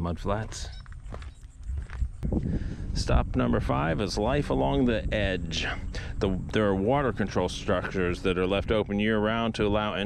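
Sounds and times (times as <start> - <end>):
person speaking: 0.0 - 0.8
faint low rumble: 0.0 - 10.0.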